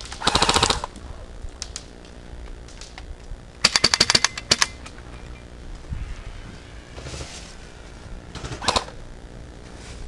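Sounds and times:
airsoft gunfire clicks: 3.6 - 4.8.

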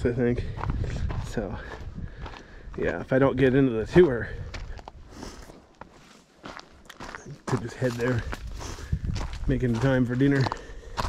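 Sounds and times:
footsteps crunching on gravel: 0.1 - 11.0.

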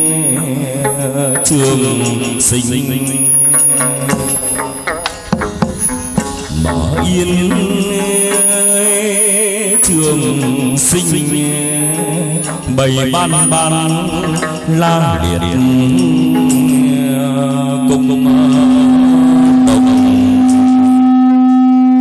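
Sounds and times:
sharp strikes: 0.0 - 21.0
ritual music melodic line: 0.0 - 22.0.

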